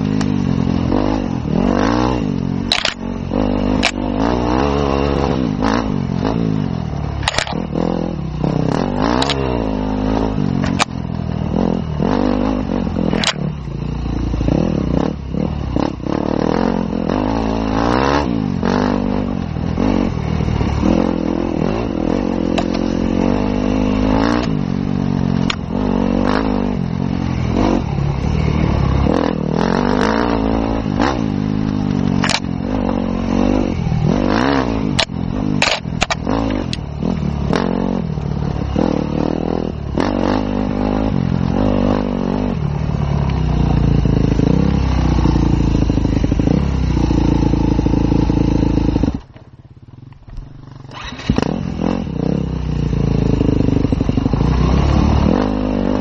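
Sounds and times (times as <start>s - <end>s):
motorcycle engine revving: 0.0s - 56.0s
sharp clicks and knocks: 2.7s - 3.0s, 3.8s - 4.0s, 7.2s - 7.6s, 8.7s - 9.5s, 10.6s - 11.0s, 13.1s - 13.4s, 22.5s - 22.9s, 31.6s - 32.5s, 34.9s - 36.9s.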